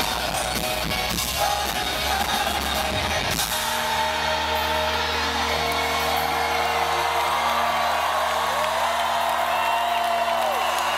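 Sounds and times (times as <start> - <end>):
crowd cheering and whooping: 2.8 - 10.9.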